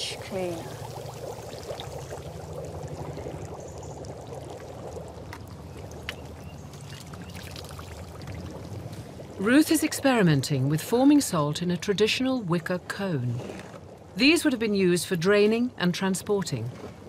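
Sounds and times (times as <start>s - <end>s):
brine boiling and bubbling: 0.0s - 17.0s.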